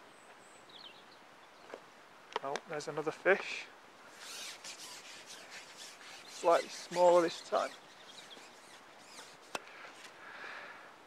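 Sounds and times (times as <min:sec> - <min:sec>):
faint handling rustling and rubbing: 0:02.6 - 0:10.2.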